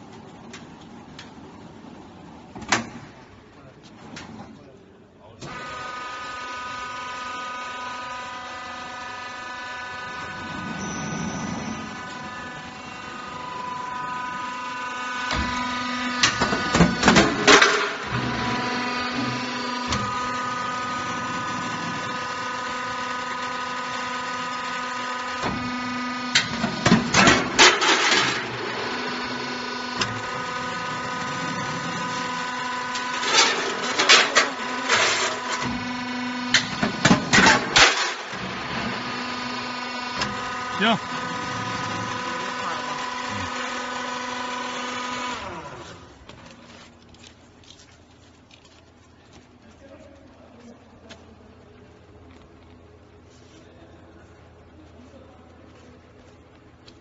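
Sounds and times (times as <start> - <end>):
machine humming: 5.4 - 46.3.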